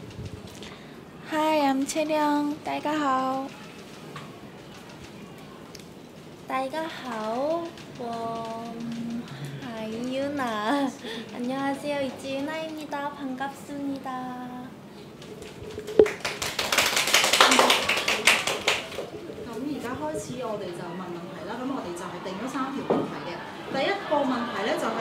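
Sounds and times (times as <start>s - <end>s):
room noise: 0.0s - 25.0s
faint clicks: 3.2s - 6.2s, 6.8s - 13.1s
applause: 16.0s - 19.1s.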